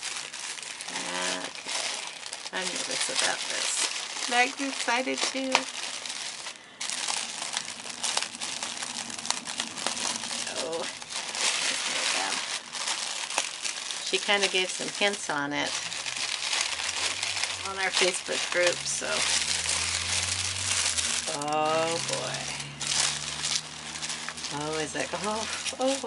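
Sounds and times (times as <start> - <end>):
tissue paper crinkling: 0.0 - 26.0.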